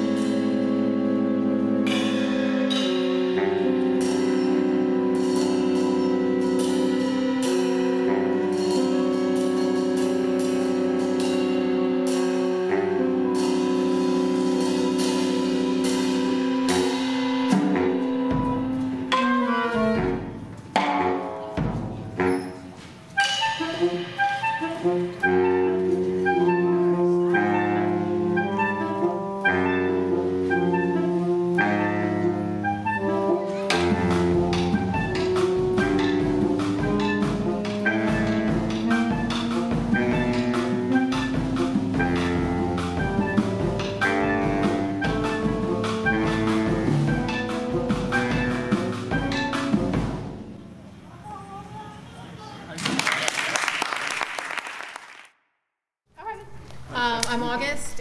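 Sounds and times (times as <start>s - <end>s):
saxophone quartet playing: 0.0s - 20.5s, 22.2s - 50.5s
drum kit playing: 0.0s - 22.3s, 28.0s - 50.6s.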